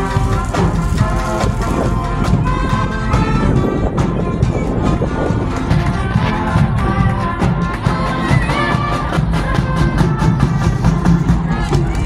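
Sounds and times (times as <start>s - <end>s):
brass chords: 0.0s - 11.8s
marching drum strokes: 0.0s - 12.0s.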